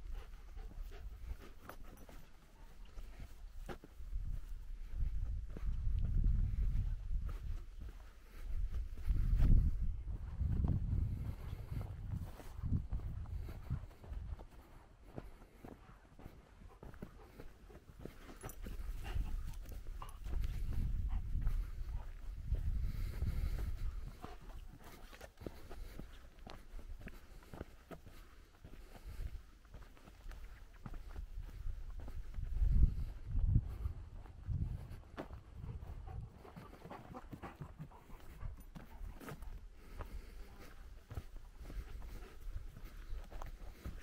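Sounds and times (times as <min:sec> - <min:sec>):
dog panting: 0:00.0 - 0:04.5, 0:11.3 - 0:32.3, 0:32.9 - 0:44.0
footsteps on dirt trail: 0:00.0 - 0:44.0.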